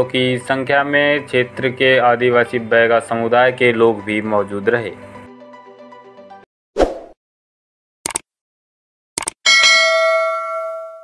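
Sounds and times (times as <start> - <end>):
notification bell ding: 9.5 - 11.0.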